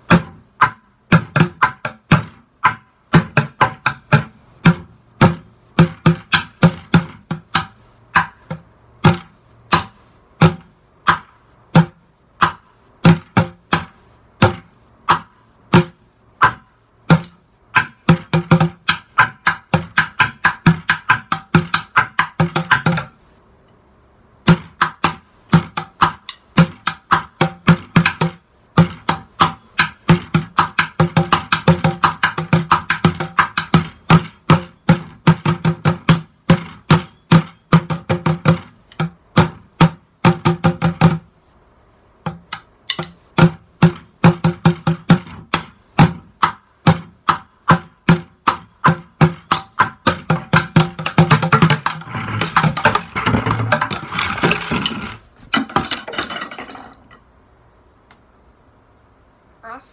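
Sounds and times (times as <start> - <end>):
drumsticks beating plastic buckets: 0.0 - 23.2, 24.4 - 41.3, 42.2 - 57.0.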